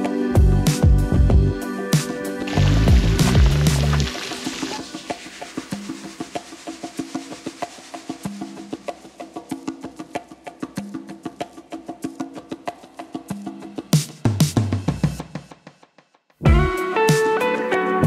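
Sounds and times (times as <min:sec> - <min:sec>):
music with heavy bass: 0:02.5 - 0:04.1, 0:16.4 - 0:16.9.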